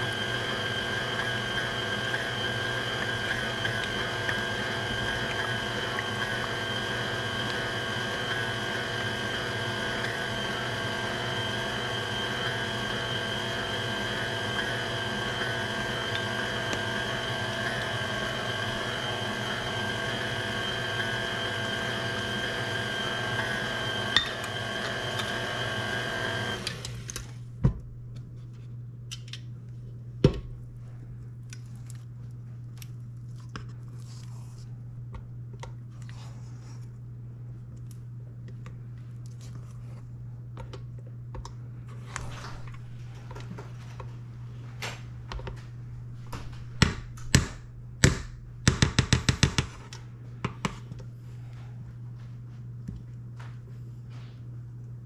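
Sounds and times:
stand mixer running: 0.0 - 27.2.

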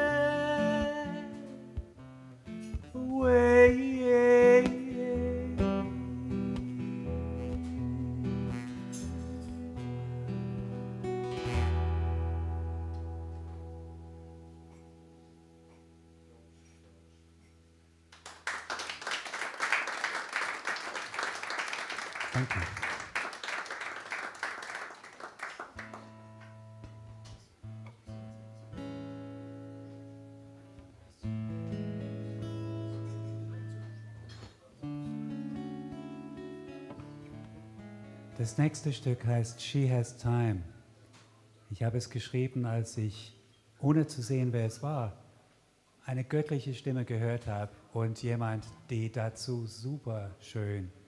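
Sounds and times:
acoustic guitar chord ringing: 0.0 - 16.4, 31.3 - 39.1
acoustic guitar notes picked: 0.0 - 16.8, 25.8 - 41.6
audience applause: 18.2 - 26.2.

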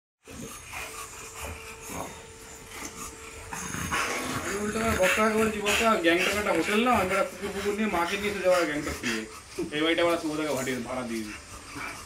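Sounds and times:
dog breathing heavily: 0.2 - 12.0.

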